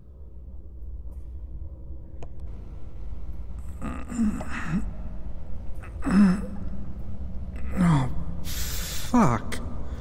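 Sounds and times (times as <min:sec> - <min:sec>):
steady low hum: 0:00.0 - 0:10.0
man groaning and gasping: 0:03.7 - 0:05.0, 0:05.8 - 0:09.5.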